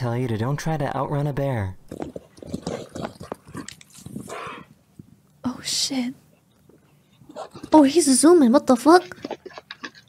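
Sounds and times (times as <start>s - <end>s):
horses galloping on dirt: 1.8s - 4.4s, 8.8s - 10.0s
horse snorting: 1.9s - 4.7s, 7.2s - 8.0s.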